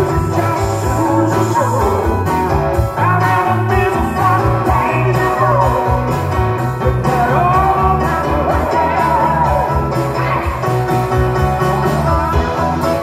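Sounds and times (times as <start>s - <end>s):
live rock band playing: 0.0s - 13.0s
person singing: 0.0s - 13.0s.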